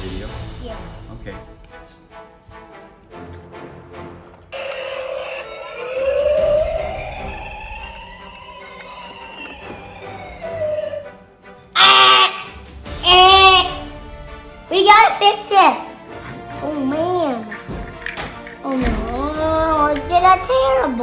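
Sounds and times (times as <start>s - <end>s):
siren-like wail: 4.6s - 11.2s.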